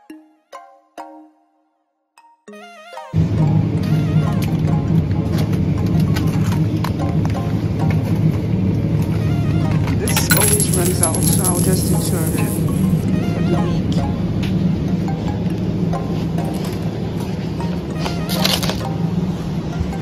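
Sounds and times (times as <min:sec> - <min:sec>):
background voices: 0:10.0 - 0:13.0.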